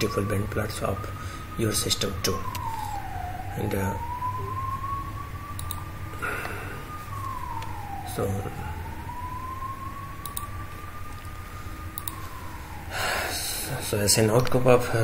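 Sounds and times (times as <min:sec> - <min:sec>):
low steady hum: 0:00.0 - 0:15.0
siren wailing: 0:00.0 - 0:15.0.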